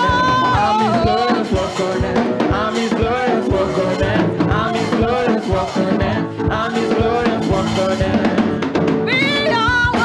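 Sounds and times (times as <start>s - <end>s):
gospel band playing: 0.0s - 10.0s
quick run of drum strikes: 0.0s - 10.0s.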